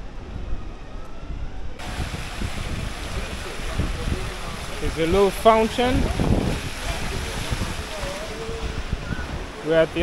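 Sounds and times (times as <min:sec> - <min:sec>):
wind rumbling on microphone: 0:00.0 - 0:10.0
fountain water splashing: 0:01.8 - 0:10.0.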